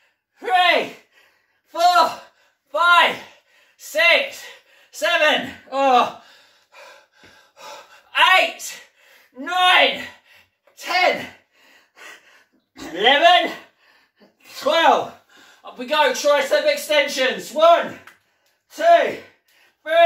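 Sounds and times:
man making short vocal sounds: 0:12.8 - 0:13.6.

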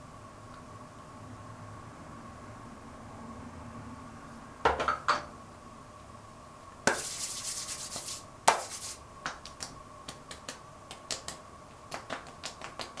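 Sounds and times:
hands rubbing together: 0:06.9 - 0:09.0
light pats on face: 0:06.9 - 0:13.0.

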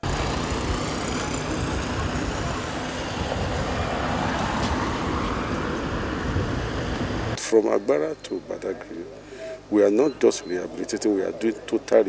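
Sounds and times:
vehicle rumbling over rough road: 0:00.0 - 0:07.4.

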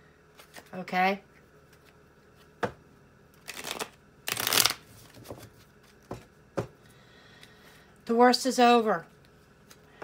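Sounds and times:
cards rustling: 0:03.4 - 0:06.0.

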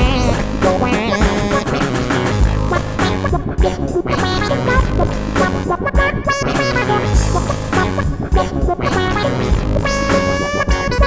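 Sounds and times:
looped bass and beats: 0:00.0 - 0:11.0.

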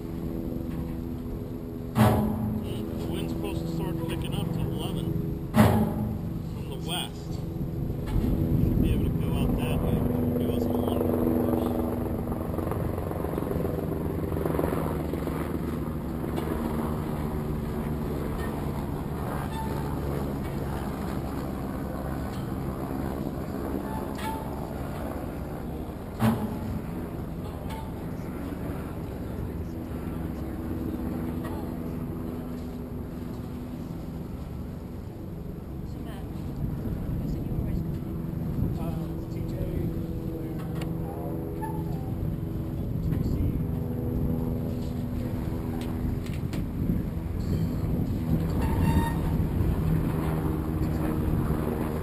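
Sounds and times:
sharp knocks: 0:01.9 - 0:03.2, 0:05.5 - 0:06.5.

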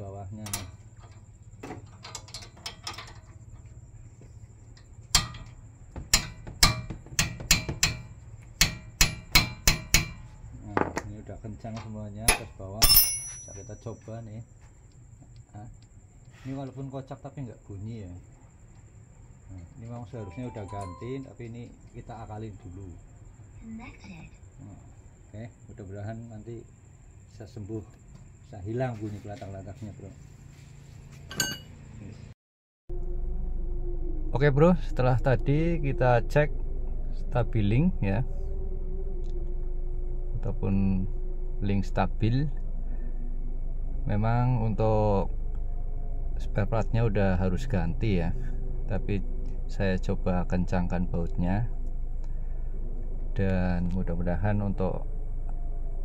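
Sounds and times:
crickets chirring: 0:00.0 - 0:32.3, 0:33.8 - 0:56.0
metal knocks on a wrench: 0:05.1 - 0:11.1, 0:11.8 - 0:13.8, 0:31.3 - 0:31.7
metallic clink: 0:12.3 - 0:14.0, 0:31.3 - 0:31.7.

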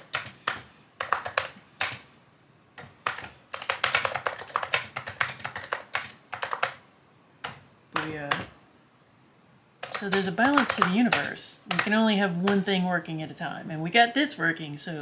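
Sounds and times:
computer keyboard typing: 0:00.0 - 0:02.1, 0:02.8 - 0:06.8, 0:07.4 - 0:08.6, 0:09.8 - 0:12.7.

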